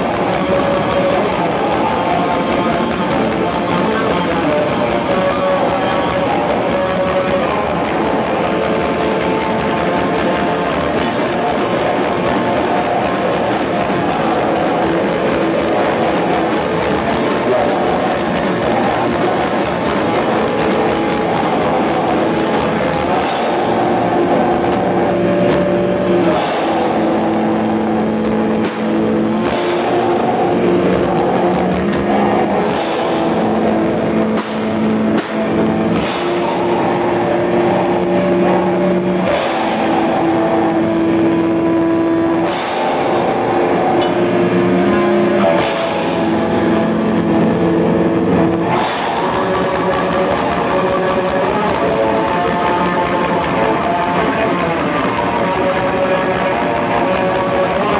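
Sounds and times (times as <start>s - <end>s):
distorted guitars: 0.0s - 57.9s
drums: 0.0s - 57.9s.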